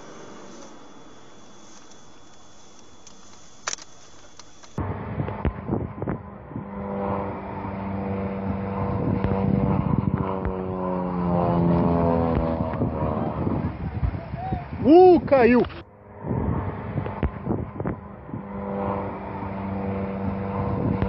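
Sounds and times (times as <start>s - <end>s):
small aircraft engine droning: 0.0s - 21.0s.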